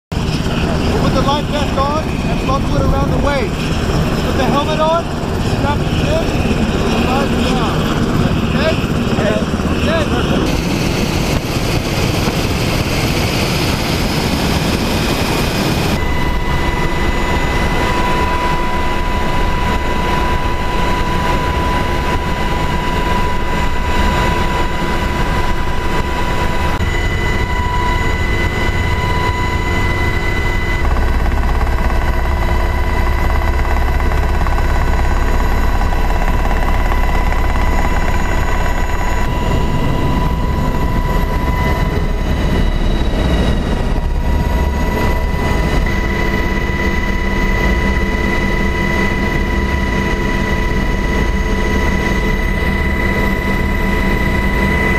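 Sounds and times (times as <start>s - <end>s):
helicopter engines and rotor: 0.1s - 54.9s.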